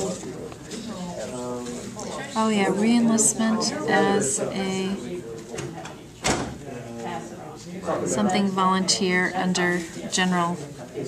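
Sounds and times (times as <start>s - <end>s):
soft murmured voices: 0.0s - 11.0s.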